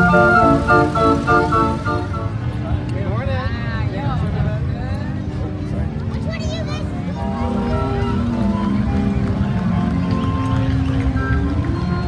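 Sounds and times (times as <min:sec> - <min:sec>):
organ music: 0:00.0 - 0:02.6, 0:07.2 - 0:12.0
low street rumble: 0:00.0 - 0:12.0.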